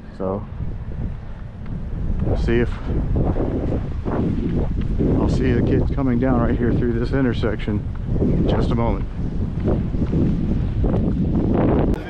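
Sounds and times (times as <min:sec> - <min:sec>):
wind blowing across microphone: 0:00.0 - 0:12.0.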